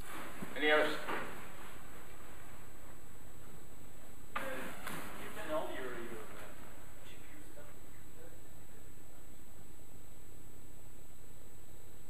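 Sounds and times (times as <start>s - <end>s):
room noise: 0.0s - 12.0s.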